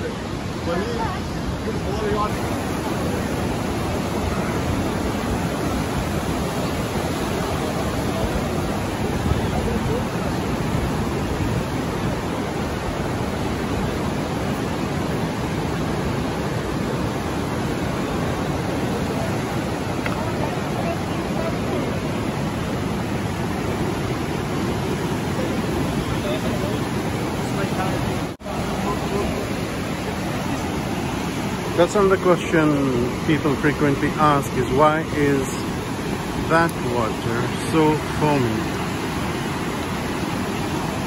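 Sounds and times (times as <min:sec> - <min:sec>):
white water rushing over rocks: 0:00.0 - 0:41.0.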